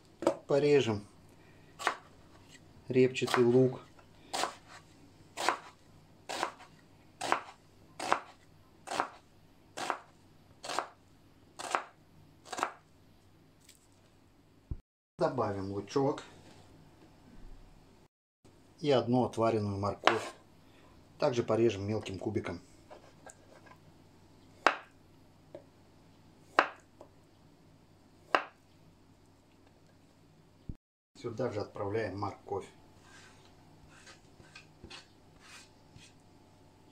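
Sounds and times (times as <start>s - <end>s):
knife slicing onion on board: 1.8s - 2.5s, 4.3s - 4.8s, 5.4s - 9.2s, 9.8s - 11.0s, 11.6s - 12.8s, 20.0s - 20.4s.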